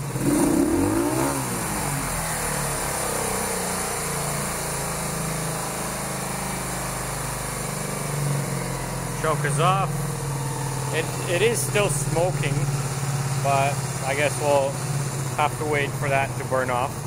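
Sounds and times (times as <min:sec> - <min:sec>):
motorcycle engine revving and idling: 0:00.0 - 0:17.0.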